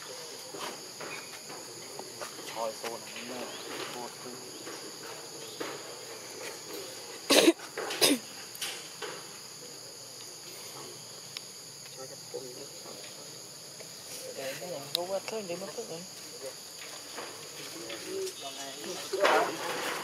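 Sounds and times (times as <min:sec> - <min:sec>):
insect chorus: 0:00.0 - 0:20.0.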